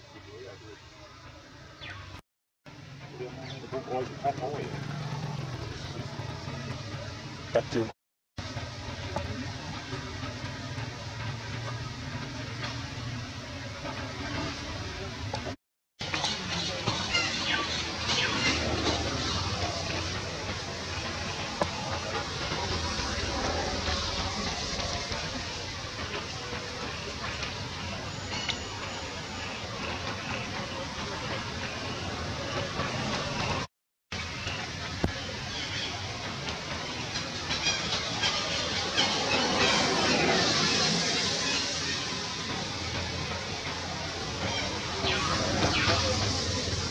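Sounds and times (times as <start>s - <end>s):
steady outdoor hiss: 0.0s - 46.9s
steady rain falling: 8.4s - 15.6s, 17.7s - 46.9s.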